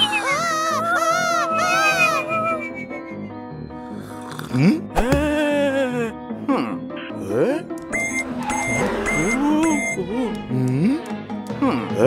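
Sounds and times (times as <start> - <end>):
voice-like wail: 0.0 - 2.6
high electronic beep: 7.9 - 10.0.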